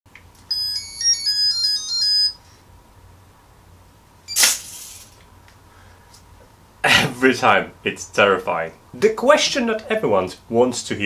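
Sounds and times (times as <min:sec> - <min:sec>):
electronic beeping melody: 0:00.5 - 0:02.4.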